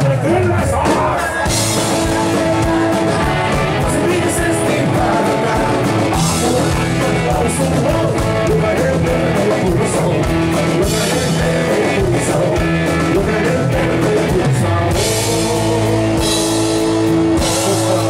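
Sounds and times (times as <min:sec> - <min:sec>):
person singing: 0:00.0 - 0:18.0
rock band playing live: 0:00.0 - 0:18.0.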